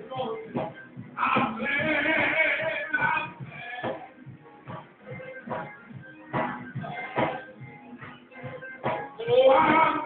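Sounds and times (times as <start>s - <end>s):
held keyboard chords: 0.0s - 10.0s
steady drum beat: 0.0s - 10.0s.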